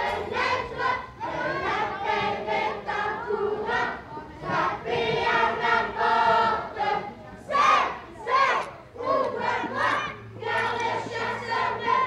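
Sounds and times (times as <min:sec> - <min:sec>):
children shouting together: 0:07.5 - 0:12.0.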